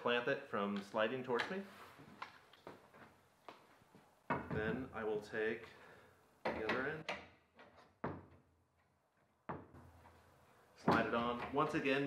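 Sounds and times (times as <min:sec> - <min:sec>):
man talking: 0:00.0 - 0:01.8, 0:04.4 - 0:05.8, 0:06.4 - 0:07.1, 0:10.8 - 0:12.0.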